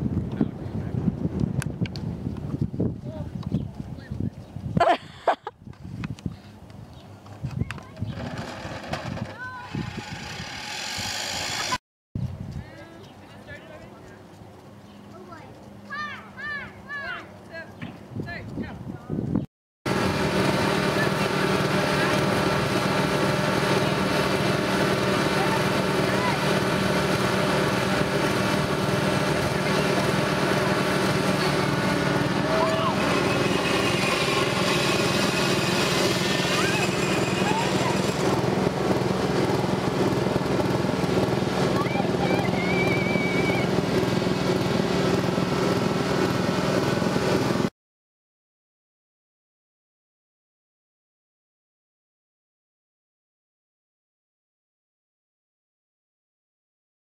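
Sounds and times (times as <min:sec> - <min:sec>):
lawn mower engines droning: 0:06.5 - 0:11.8, 0:19.9 - 0:47.7.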